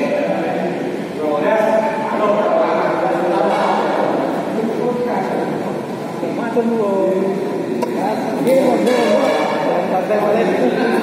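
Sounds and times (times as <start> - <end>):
men talking and calling out: 0.0 - 11.0.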